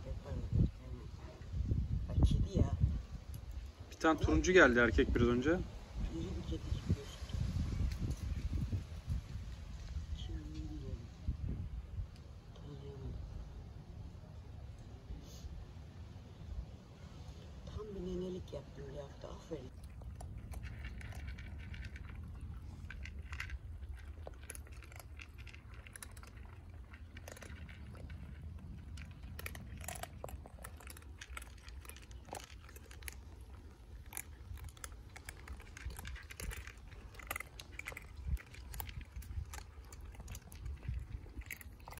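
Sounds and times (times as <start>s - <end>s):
cats crunching dry kibble: 7.4s - 10.6s, 19.7s - 42.0s
low steady rumble: 7.4s - 42.0s.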